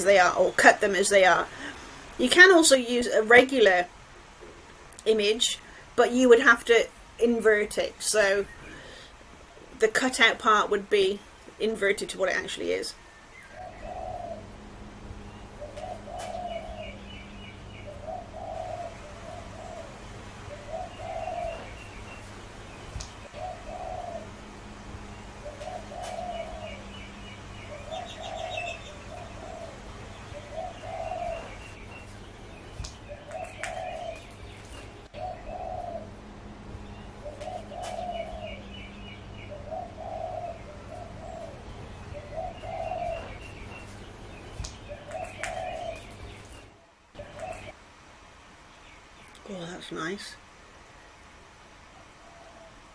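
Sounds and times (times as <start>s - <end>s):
steady low hum: 0.0s - 48.8s
small birds chirping faintly: 0.0s - 52.9s
dove cooing: 13.5s - 47.8s, 52.0s - 52.9s.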